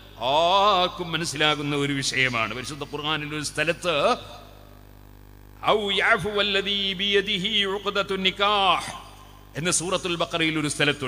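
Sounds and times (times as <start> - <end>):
man lecturing: 0.0 - 4.4, 5.6 - 11.0
electrical mains hum: 0.0 - 11.0.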